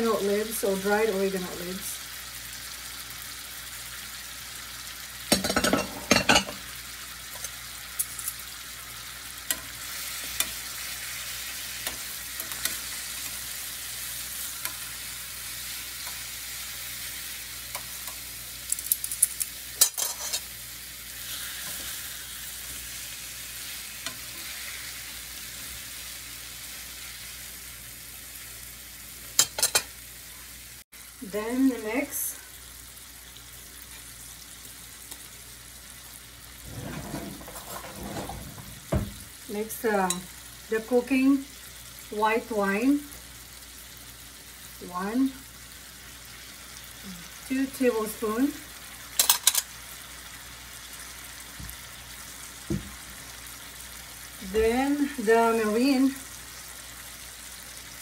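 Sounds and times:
fish sizzling in a frying pan: 0.0 - 36.7, 37.4 - 58.0
metal tongs clicking against pan: 7.4 - 8.4, 9.4 - 10.6, 11.8 - 12.9, 17.7 - 20.5, 49.2 - 49.7.

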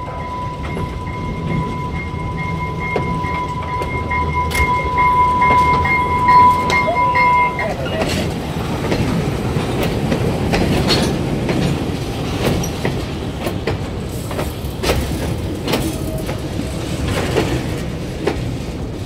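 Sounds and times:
steady high-pitched tone: 0.0 - 8.0
railway wagons rumbling and rolling: 0.0 - 19.0
wheels and couplings clanking: 0.0 - 19.0.

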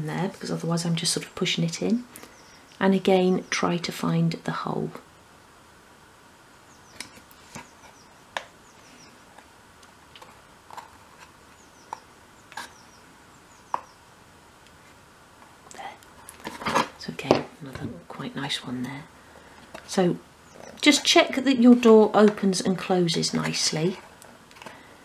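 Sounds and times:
handling noise: 14.7 - 18.0.

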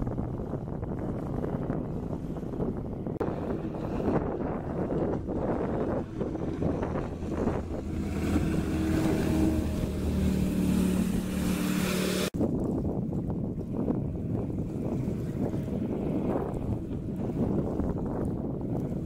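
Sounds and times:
boat engine hum: 0.0 - 19.0
jet pump and water rushing: 0.0 - 19.0
wind buffeting microphone: 0.0 - 19.0.

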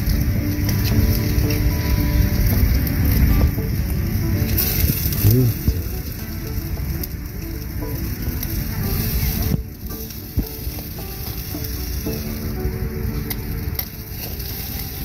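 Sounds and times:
coals crackling: 0.0 - 15.0
meat sizzling: 0.0 - 15.0
metal tongs scraping on grill: 13.8 - 15.0.

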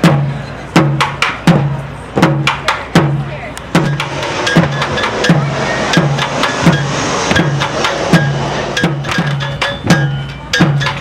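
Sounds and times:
deep drum beating: 0.0 - 11.0.

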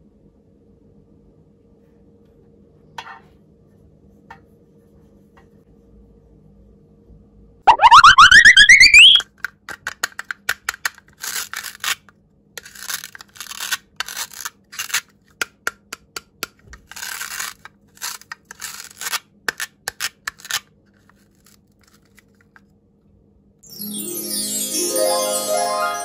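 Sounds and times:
rising cartoon whistle: 7.7 - 9.2
plastic toy clicking and rasping: 9.4 - 12.0.

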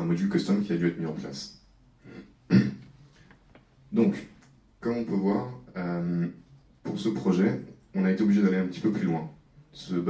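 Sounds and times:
man clearing throat: 2.0 - 2.9.

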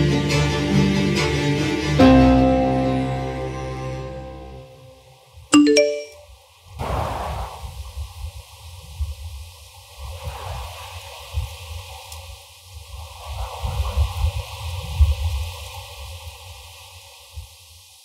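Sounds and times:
phone notification chime: 5.6 - 6.2
wind rumble on microphone: 6.7 - 18.0.

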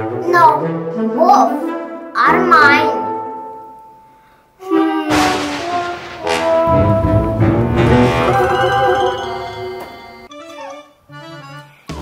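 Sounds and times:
brass-led orchestral music: 0.0 - 2.2, 4.6 - 10.4.

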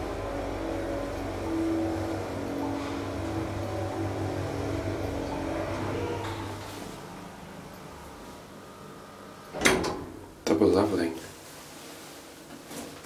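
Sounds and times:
elevator mechanical hum: 0.0 - 12.2.

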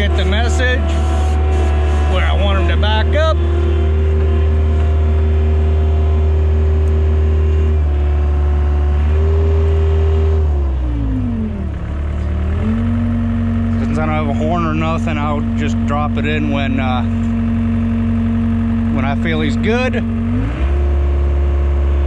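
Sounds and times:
skid steer engine running: 0.0 - 22.0.

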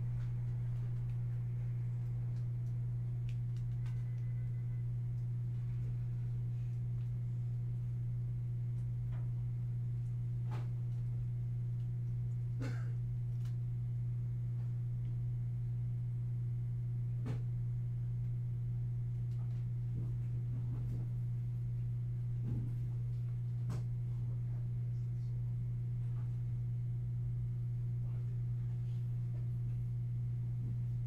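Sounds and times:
low electrical hum: 0.0 - 31.0.

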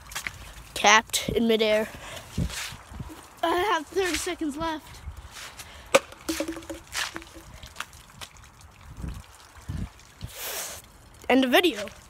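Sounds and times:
plastic bottle landing knock: 5.9 - 7.5
dull thumps: 6.0 - 7.6.

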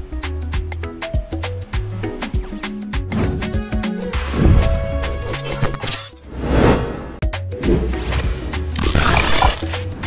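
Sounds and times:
roar-like sound effect: 8.8 - 9.8.

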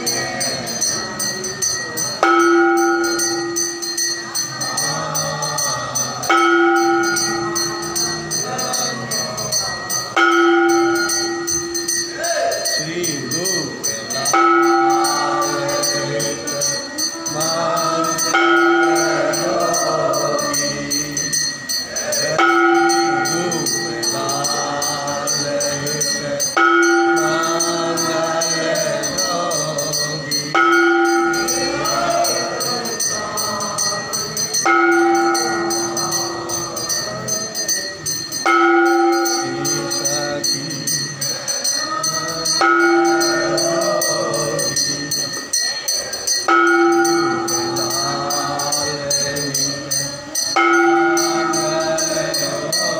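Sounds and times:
bells and hand percussion jingling: 0.0 - 52.9
bright ringing tone: 0.0 - 52.9
group devotional singing: 0.0 - 52.9.

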